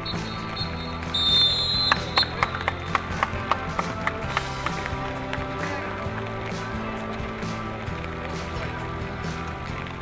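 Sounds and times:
referee's whistle blasts: 0.0s - 2.5s
background music: 0.0s - 10.0s.

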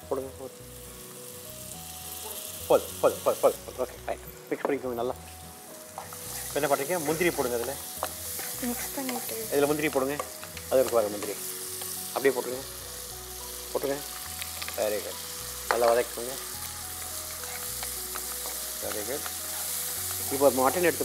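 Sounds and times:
masala frying in oil: 5.0s - 21.0s
wooden spatula stirring: 5.9s - 12.0s, 17.0s - 21.0s.

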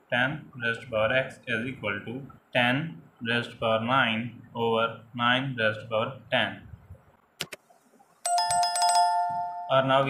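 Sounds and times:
bright electronic bell chime: 8.3s - 10.0s.

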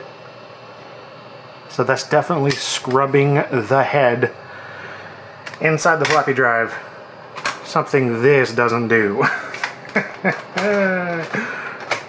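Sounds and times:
man laughing: 9.2s - 11.8s.

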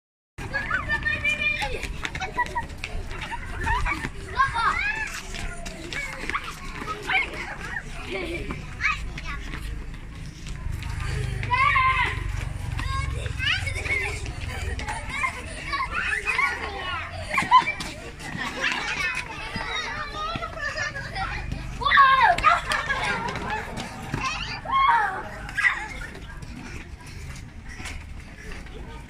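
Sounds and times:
children shouting and laughing: 0.4s - 29.0s
children shrieking: 13.5s - 17.8s, 18.7s - 26.2s.

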